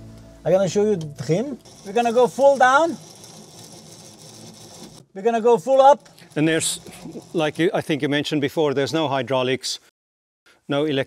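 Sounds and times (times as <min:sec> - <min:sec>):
hand crank mechanical whir: 0:01.2 - 0:07.9.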